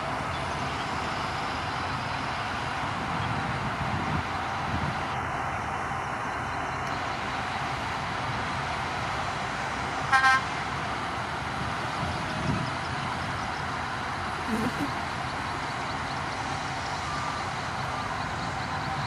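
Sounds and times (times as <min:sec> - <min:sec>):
bulldozer diesel engines rumbling: 0:00.0 - 0:19.0
vehicle horn toot: 0:10.1 - 0:10.5.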